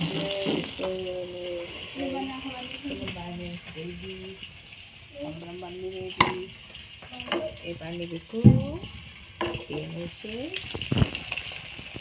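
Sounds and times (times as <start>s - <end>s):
food sizzling in hot oil: 0.0s - 12.0s.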